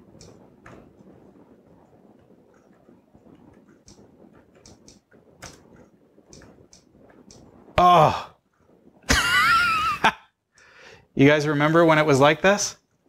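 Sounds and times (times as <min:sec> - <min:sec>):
low room noise: 0:00.0 - 0:13.0
keyboard key clicks: 0:04.6 - 0:05.6.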